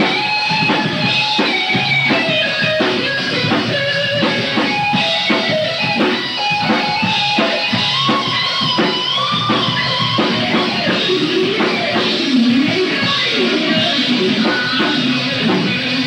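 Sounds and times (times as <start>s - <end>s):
bass guitar: 0.0s - 16.0s
distorted electric guitars: 0.0s - 16.0s
drum kit beat: 0.0s - 16.0s.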